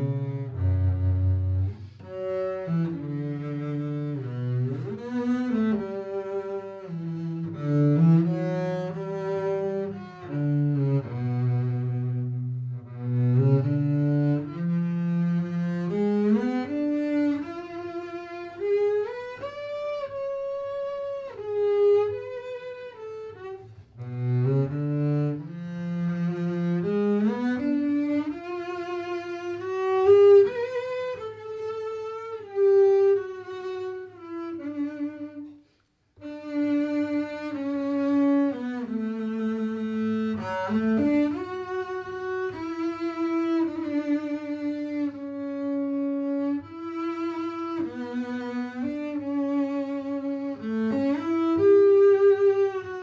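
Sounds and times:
bowed double bass: 0.0 - 53.0.

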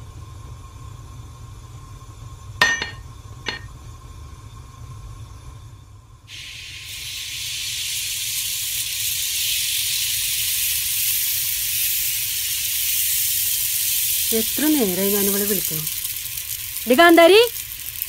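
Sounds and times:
batter sizzling in frying pan: 0.1 - 18.0.

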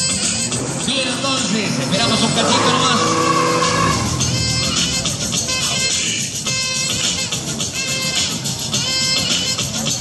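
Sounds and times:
background music: 0.0 - 10.0
car engine running under load: 0.5 - 6.5
tyres squealing: 1.8 - 6.3.

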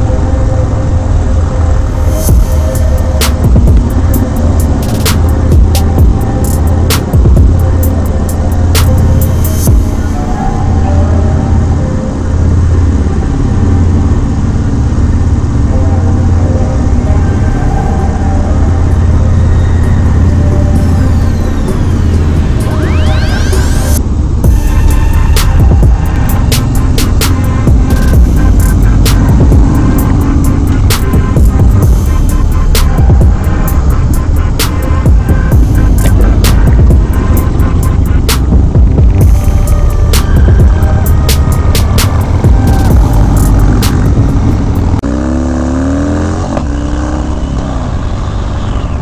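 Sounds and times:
motorcycle engine revving: 0.0 - 49.0
wind: 0.0 - 49.0
music with heavy beat: 1.9 - 10.4, 17.9 - 45.0.

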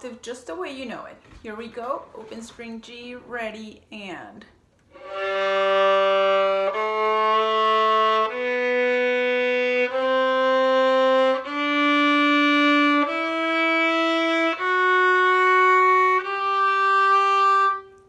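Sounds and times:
violin playing a scale: 4.9 - 18.0.

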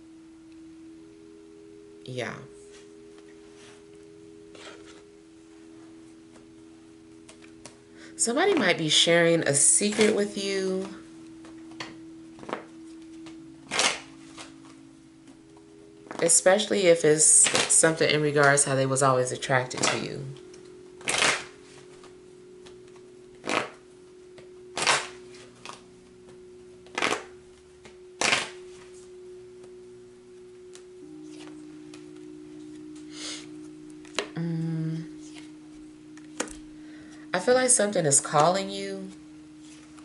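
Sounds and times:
faint steady hum: 0.0 - 40.0
low droning tones: 0.0 - 40.0
cards being shuffled: 12.4 - 14.8, 17.4 - 17.7, 21.0 - 21.5, 23.4 - 23.8, 24.8 - 25.8, 26.9 - 27.3, 28.2 - 28.6, 35.2 - 35.5.

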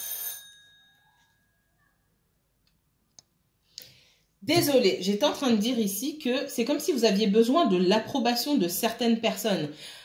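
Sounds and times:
bell-like chime: 0.0 - 1.9.

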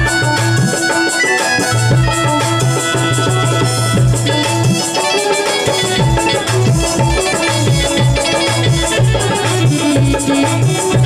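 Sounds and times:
folk melody: 0.0 - 11.0
steady drum beat: 0.0 - 11.0.

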